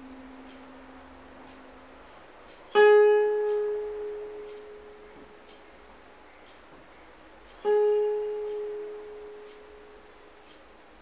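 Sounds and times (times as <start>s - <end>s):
plucked guitar note ringing: 0.0s - 5.7s, 7.6s - 10.4s
faint room hiss: 0.0s - 11.0s.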